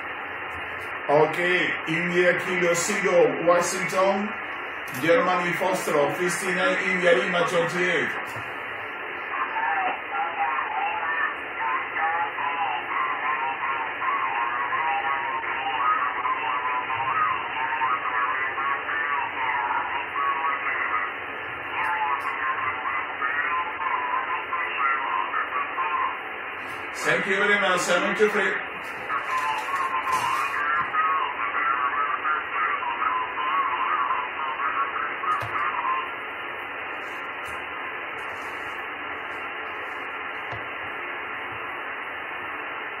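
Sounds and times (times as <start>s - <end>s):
garbled radio voices warbling: 0.0s - 42.2s
radio hiss: 0.0s - 43.0s.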